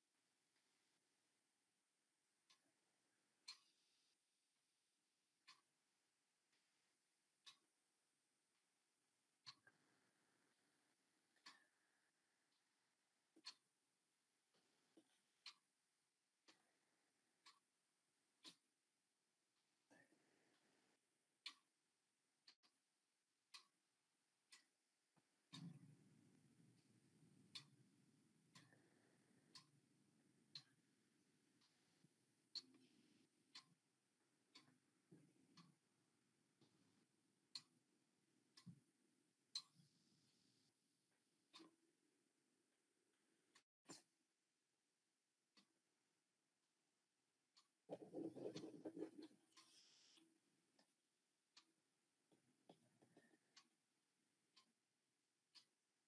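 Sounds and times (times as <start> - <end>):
faint ticks: 2.2 - 4.2, 11.3 - 12.7, 24.5 - 27.8, 28.5 - 29.8.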